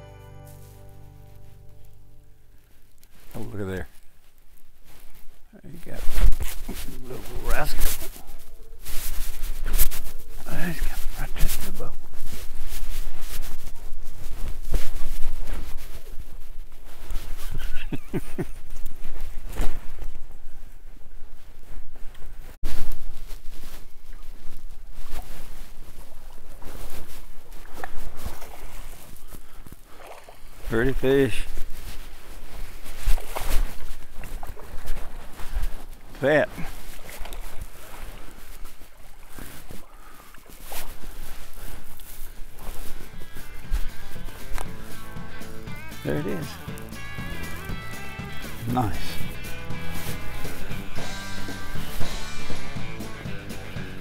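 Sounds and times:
background music: 0:00.0 - 0:02.4, 0:43.8 - 0:54.0.

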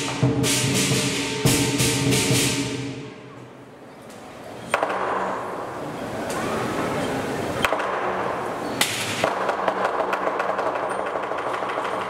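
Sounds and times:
cymbal crash: 0:00.0 - 0:03.4
drum cymbals and gong percussion: 0:00.0 - 0:03.8.

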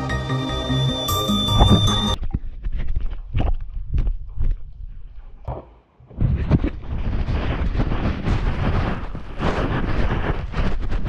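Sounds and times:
music track: 0:00.0 - 0:02.2.

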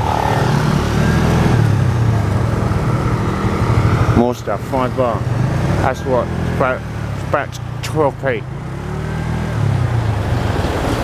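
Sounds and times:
motor scooter engine running: 0:00.0 - 0:11.0.

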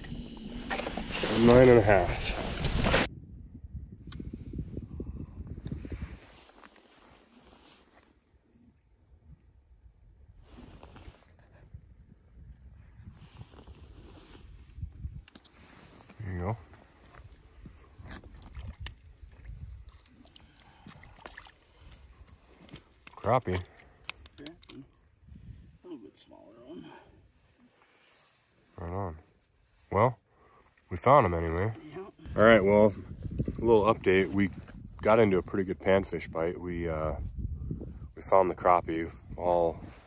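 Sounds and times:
wind noise on microphone: 0:00.0 - 0:07.2, 0:09.0 - 0:21.2, 0:25.1 - 0:25.8, 0:32.2 - 0:40.0.

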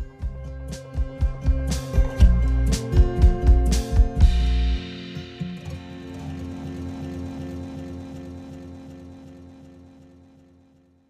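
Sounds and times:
music with low pulse: 0:00.0 - 0:10.8.

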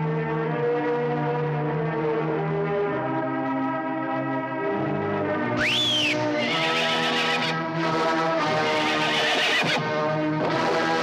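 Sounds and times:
film background score: 0:00.0 - 0:11.0
horse whinnying: 0:05.6 - 0:07.6, 0:08.6 - 0:10.0.

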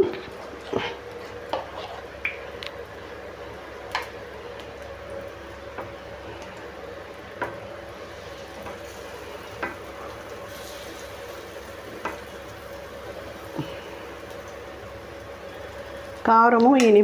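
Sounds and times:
batter sizzling in oil: 0:00.0 - 0:17.0.

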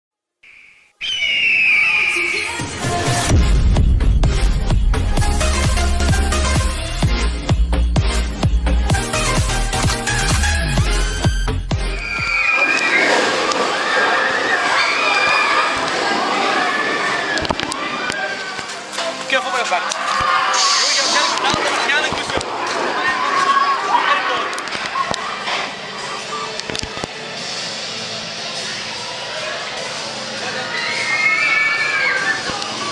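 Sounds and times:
rushing whoosh with falling whistle: 0:00.5 - 0:02.5, 0:12.0 - 0:15.5
roller coaster riders screaming: 0:01.0 - 0:02.8, 0:12.0 - 0:18.8, 0:19.8 - 0:21.9, 0:29.9 - 0:32.9.

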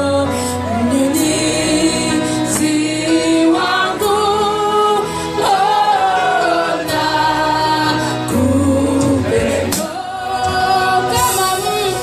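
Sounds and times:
choir singing long notes: 0:00.7 - 0:11.6.

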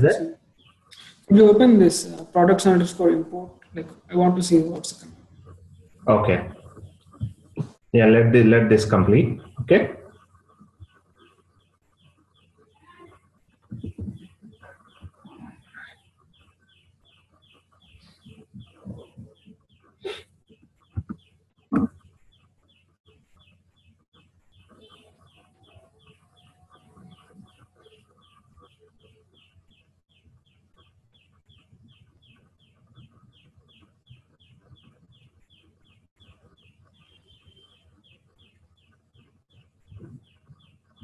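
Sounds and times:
bird chirping: 0:00.0 - 0:41.0.

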